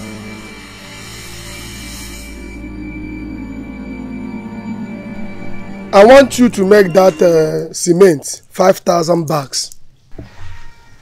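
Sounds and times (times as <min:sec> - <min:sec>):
high hiss: 0:00.0 - 0:03.3
low film score chords: 0:00.0 - 0:08.9.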